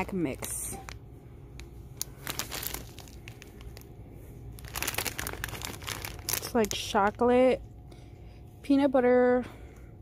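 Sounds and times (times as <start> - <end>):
plastic bag crinkling: 0.0 - 7.4.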